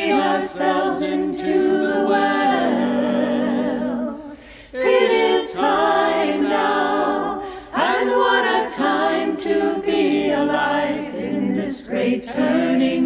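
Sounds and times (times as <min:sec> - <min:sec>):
group singing a hymn: 0:00.0 - 0:13.0.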